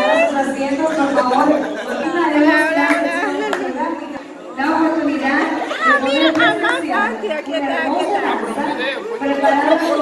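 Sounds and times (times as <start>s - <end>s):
indistinct chatter of guests: 0.0s - 10.0s.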